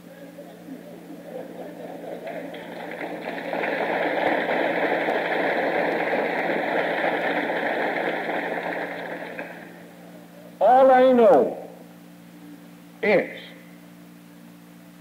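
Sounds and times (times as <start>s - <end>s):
low cassette hum: 0.0s - 13.2s
audience applause: 0.4s - 10.0s.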